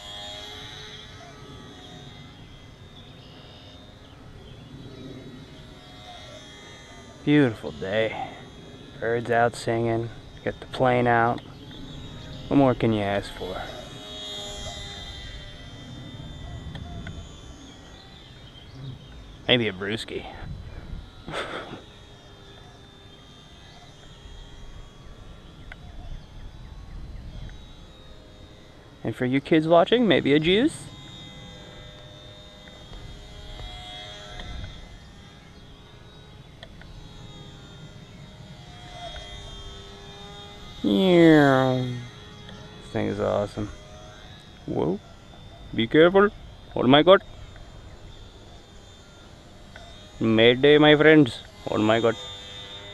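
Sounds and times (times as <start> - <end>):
model plane electric motor whine: 0.0 - 52.9
outdoor background noise: 0.0 - 52.9.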